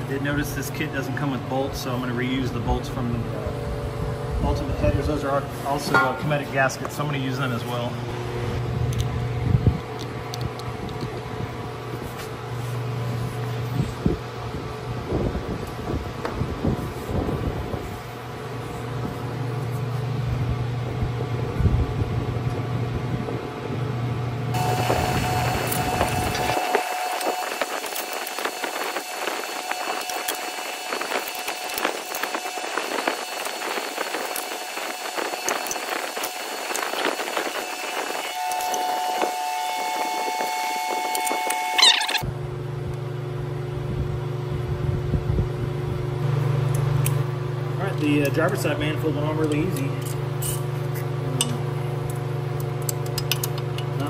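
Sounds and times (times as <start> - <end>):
low workshop hum: 0.0 - 54.0.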